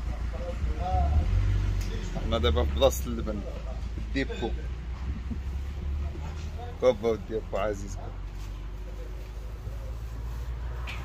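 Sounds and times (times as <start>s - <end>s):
low rumble: 3.0s - 6.7s.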